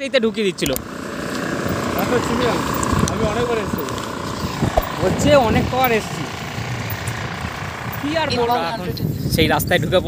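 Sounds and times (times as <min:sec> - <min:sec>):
constant whine: 0:00.0 - 0:09.2
moving vehicle running noise: 0:00.0 - 0:10.0.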